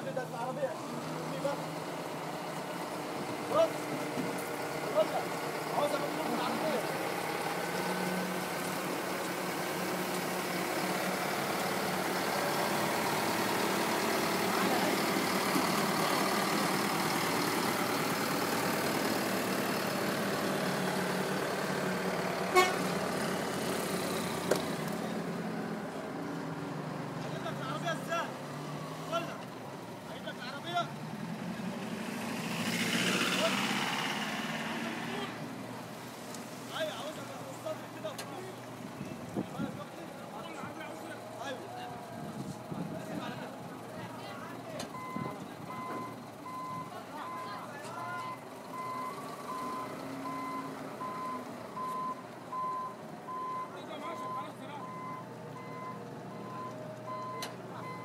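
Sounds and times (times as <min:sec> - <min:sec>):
people's voices: 0:00.0 - 0:07.1, 0:08.4 - 0:21.2, 0:33.1 - 0:35.5, 0:36.3 - 0:50.7
loader diesel engine running: 0:00.0 - 0:36.0, 0:36.6 - 0:58.0.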